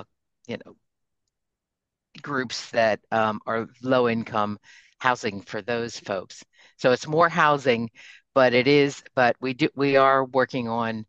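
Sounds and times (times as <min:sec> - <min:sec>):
person speaking over video call: 0:00.0 - 0:00.8, 0:02.2 - 0:11.0.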